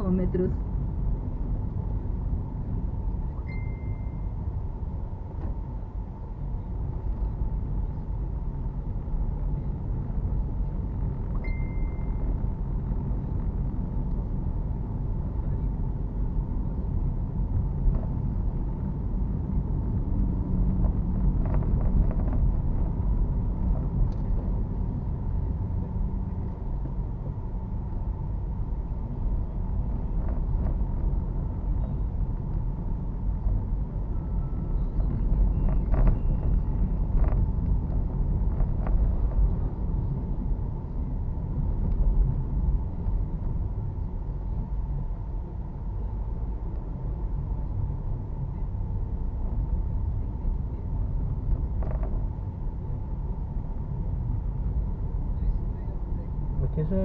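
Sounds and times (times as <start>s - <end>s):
car engine and tyre rumble: 0.0s - 57.0s
brief beeps: 3.4s - 4.2s, 11.4s - 12.2s.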